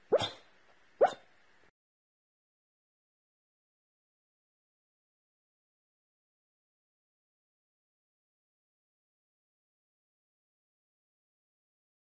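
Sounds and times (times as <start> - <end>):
sleeping dog soft woofs: 0.0 - 1.2.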